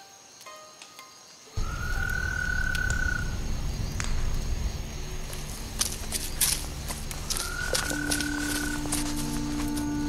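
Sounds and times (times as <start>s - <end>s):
low rumble: 1.6s - 9.8s.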